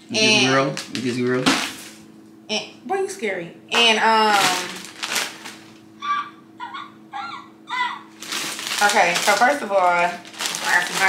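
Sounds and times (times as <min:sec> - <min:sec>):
woman giggling: 0:06.6 - 0:08.0.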